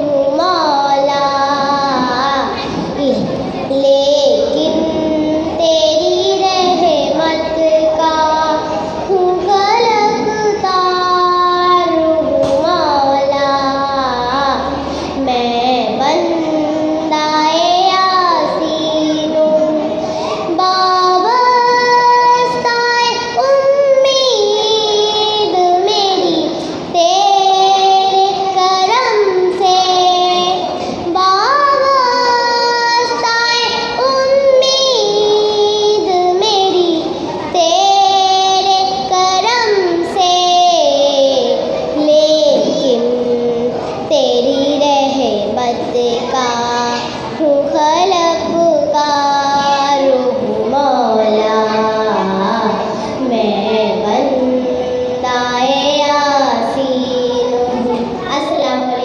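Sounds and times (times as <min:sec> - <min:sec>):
girl singing devotional poem: 0:00.0 - 0:59.0.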